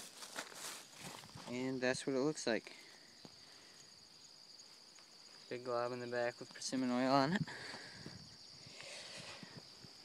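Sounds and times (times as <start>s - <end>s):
high-pitched insect song: 0.0s - 10.0s.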